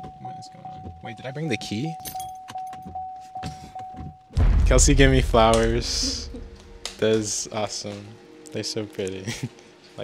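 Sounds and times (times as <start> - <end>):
car warning chime: 0.1 - 4.3.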